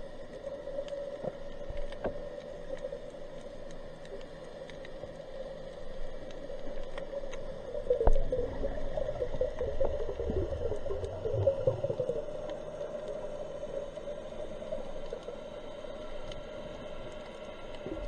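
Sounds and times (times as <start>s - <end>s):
faint clicks: 0.0s - 18.0s
muffled underwater hum: 0.0s - 18.0s.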